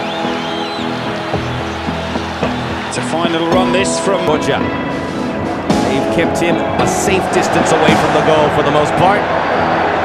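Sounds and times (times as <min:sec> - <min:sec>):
background music: 0:00.0 - 0:10.0
crowd noise: 0:00.0 - 0:10.0
man commentating: 0:02.8 - 0:04.8, 0:05.7 - 0:09.4.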